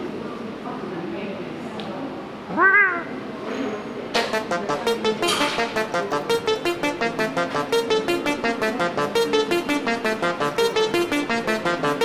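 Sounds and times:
cat meow: 2.5 - 3.2.

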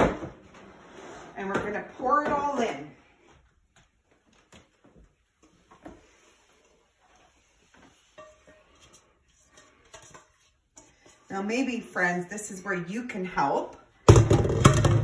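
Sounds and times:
cooking pot knocking and scraping: 8.0 - 11.3, 14.1 - 15.0.

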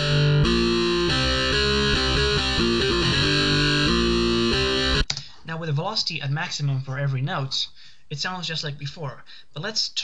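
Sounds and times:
distorted electric guitar riff: 0.0 - 5.1.

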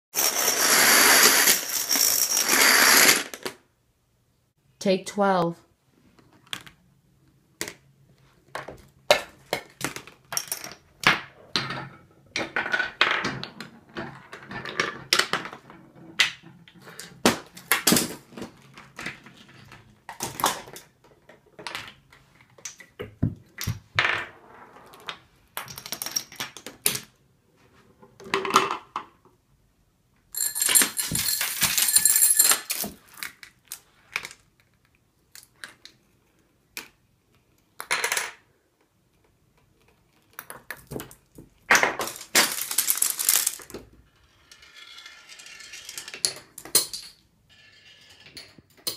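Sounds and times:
plastic balls rolling on track: 0.2 - 3.6, 9.5 - 22.9, 40.4 - 48.9
small parts clicking and knocking: 25.5 - 27.1, 30.2 - 48.9.

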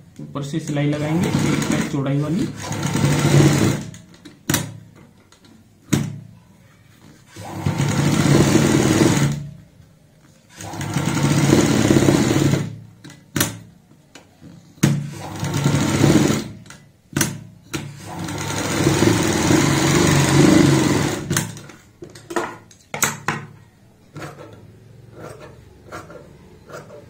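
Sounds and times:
sewing machine stitching: 0.7 - 4.7, 7.2 - 9.5, 10.5 - 12.8, 14.8 - 21.8, 24.1 - 27.0.

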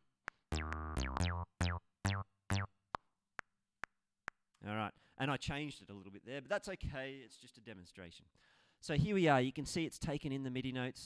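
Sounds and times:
metronome clicking: 0.2 - 3.1
synth bass notes: 0.5 - 2.7
man speaking: 4.6 - 8.2, 8.8 - 11.0.

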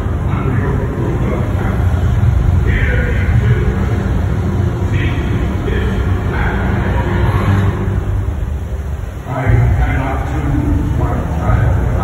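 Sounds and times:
deep rumble from sound system: 0.0 - 12.0.

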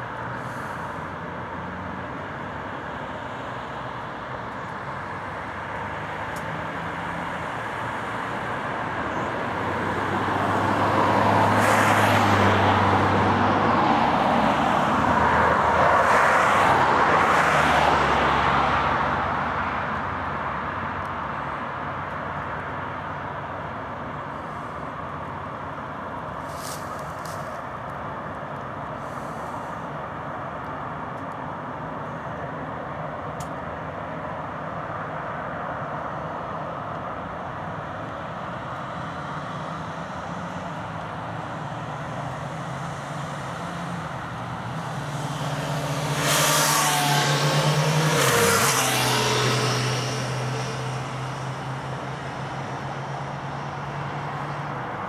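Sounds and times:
road traffic: 0.0 - 55.0
vehicle passing close by: 9.4 - 20.2, 39.0 - 55.0.

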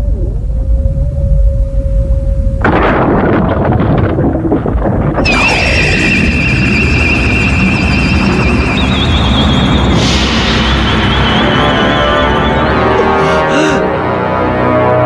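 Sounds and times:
deep rumble: 0.0 - 14.3
burst of noise: 2.6 - 13.5
high warbling tone: 5.2 - 13.2.

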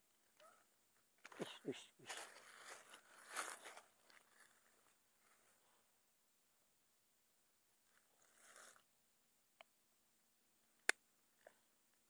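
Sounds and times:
rustle in dry leaves: 2.1 - 5.4.

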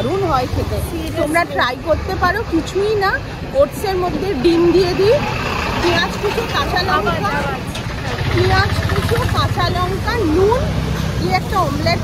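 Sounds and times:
people talking: 0.0 - 5.2, 5.8 - 12.0
low rumble of passing traffic: 0.0 - 12.0.

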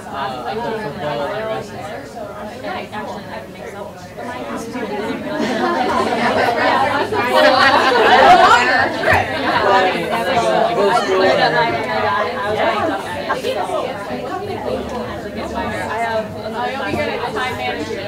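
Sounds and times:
indistinct chatter of many voices: 0.0 - 18.0.

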